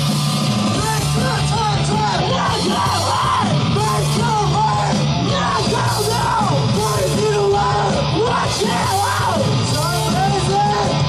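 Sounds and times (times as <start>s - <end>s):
rock band playing live: 0.0s - 11.0s
person shouting vocals: 0.8s - 11.0s.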